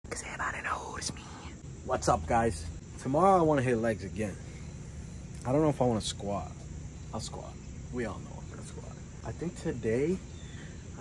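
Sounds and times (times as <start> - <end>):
man whispering: 0.1 - 1.6.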